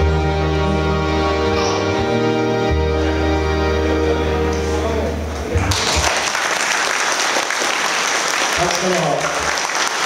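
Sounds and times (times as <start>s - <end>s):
audience applauding: 5.6s - 10.0s.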